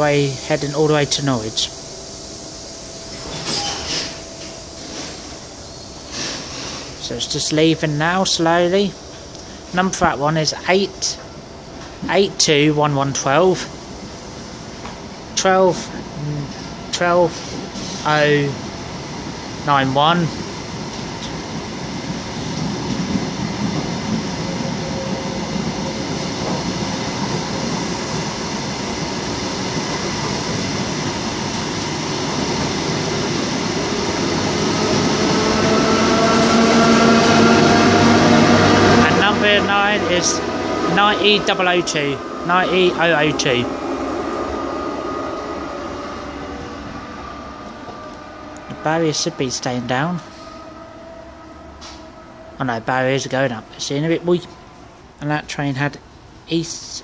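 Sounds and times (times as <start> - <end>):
train rumbling: 0.0 - 57.0
brief hissing: 1.5 - 7.0.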